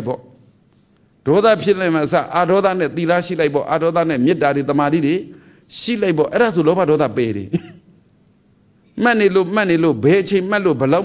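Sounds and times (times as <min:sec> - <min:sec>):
man preaching: 0:00.0 - 0:00.4, 0:01.2 - 0:07.6, 0:09.0 - 0:11.0
throat clearing: 0:07.5 - 0:07.9.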